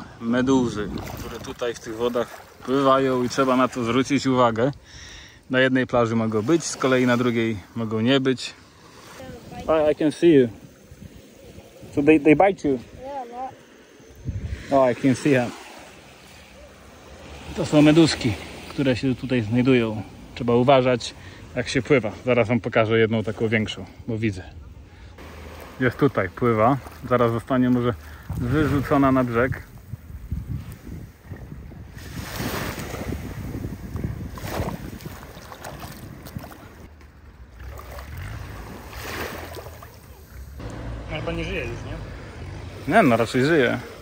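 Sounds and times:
wind rumbling on microphone: 0.0 - 1.9, 9.2 - 15.1, 27.8 - 41.0
small waves washing over sand: 0.0 - 4.8, 5.5 - 22.6, 25.2 - 44.0
people talking: 41.1 - 42.1, 42.8 - 43.9.

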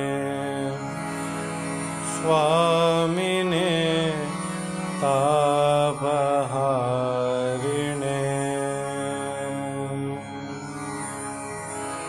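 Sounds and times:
chanting with held notes: 0.0 - 12.0
steady drone: 0.0 - 12.0.

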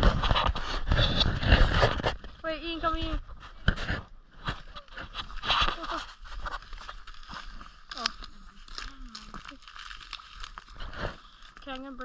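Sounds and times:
dry reeds crackling and crunching: 0.0 - 12.0.

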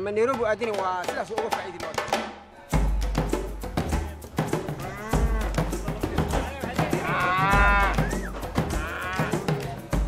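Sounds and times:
cattle mooing: 4.8 - 5.7, 7.0 - 8.1, 8.7 - 9.4.

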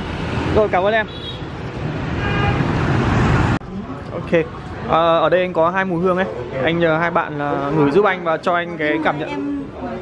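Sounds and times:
passing motorbikes and cars: 0.0 - 10.0.

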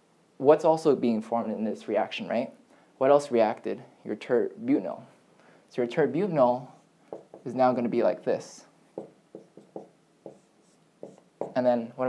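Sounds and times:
marker writing on whiteboard: 6.7 - 8.1, 8.9 - 11.7.

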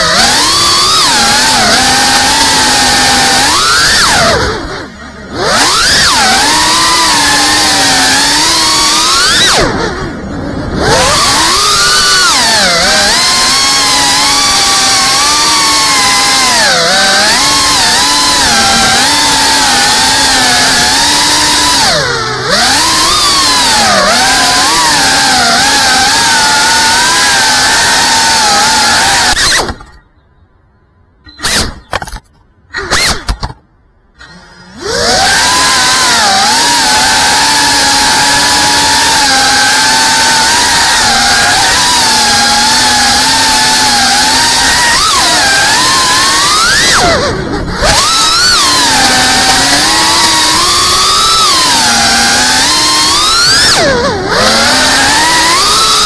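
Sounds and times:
quadcopter motors whining: 0.0 - 30.0, 31.3 - 33.6, 34.2 - 56.0.

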